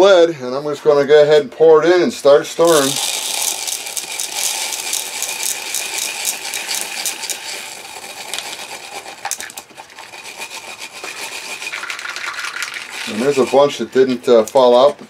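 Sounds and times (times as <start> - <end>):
pellets pouring into plastic cup: 2.6 - 14.9.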